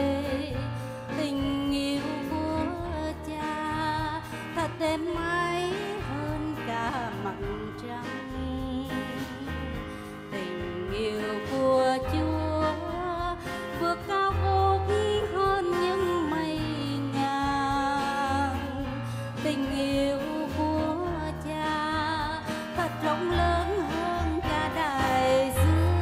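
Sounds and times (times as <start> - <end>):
instrumental accompaniment with bass: 0.0 - 26.0
woman singing: 0.0 - 26.0.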